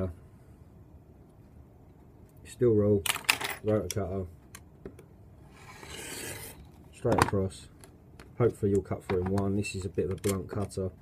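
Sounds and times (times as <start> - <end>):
rotary cutter scraping through latex: 5.5 - 6.6.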